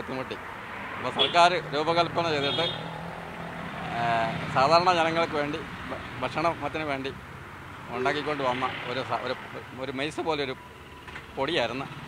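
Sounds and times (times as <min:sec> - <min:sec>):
vehicle passing on road: 0:00.0 - 0:12.0
man speaking: 0:01.0 - 0:02.8, 0:03.9 - 0:07.2, 0:07.9 - 0:10.6.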